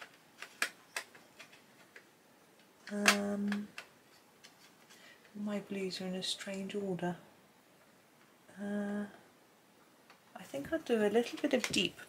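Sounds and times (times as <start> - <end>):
coloured pencils clicking together: 0.0 - 5.0, 11.2 - 12.0.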